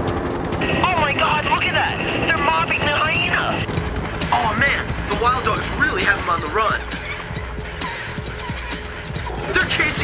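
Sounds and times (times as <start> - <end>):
helicopter running: 0.0 - 10.0.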